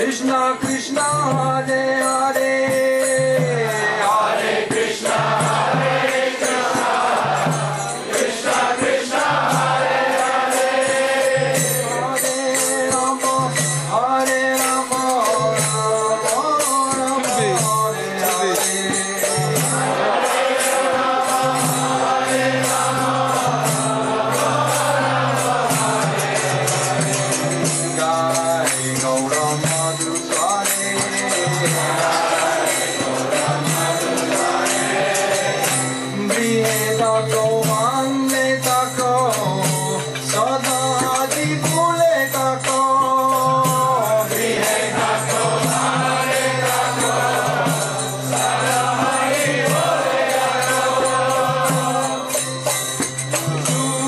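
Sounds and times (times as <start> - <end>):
hand cymbals striking a beat: 0.0 - 54.0
group chanting a melody: 3.7 - 12.3, 19.3 - 28.1, 31.2 - 36.8, 44.3 - 52.5.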